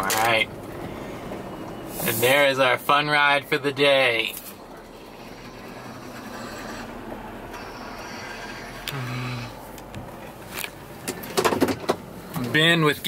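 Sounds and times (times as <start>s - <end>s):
engine and tyres on gravel: 0.0s - 13.0s
sharp clicks and knocks: 9.8s - 12.0s.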